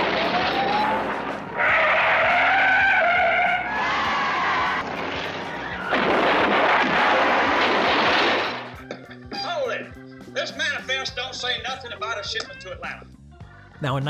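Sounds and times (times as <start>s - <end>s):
crowd cheering: 0.0s - 7.7s
car engines: 0.0s - 8.7s
tyres squealing: 0.0s - 9.5s.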